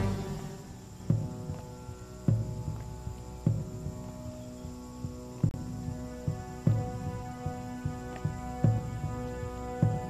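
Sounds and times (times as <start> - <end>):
droning chord: 0.0 - 10.0.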